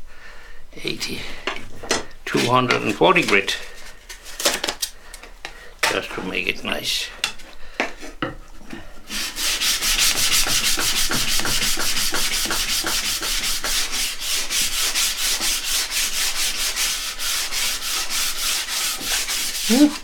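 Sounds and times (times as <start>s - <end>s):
sandpaper scratching wood: 9.1s - 20.0s.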